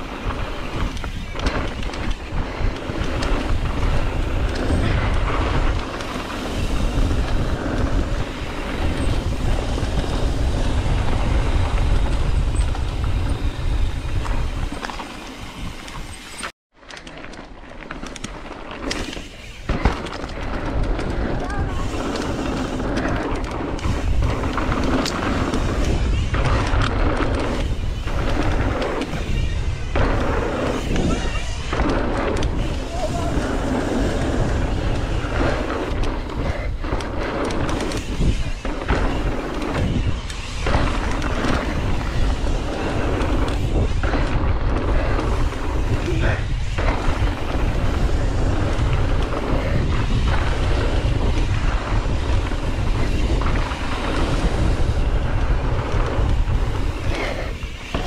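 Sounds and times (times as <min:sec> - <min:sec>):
wind buffeting microphone: 0:00.0 - 0:16.3, 0:19.4 - 0:58.0
bike tyres on dirt trail: 0:00.0 - 0:58.0.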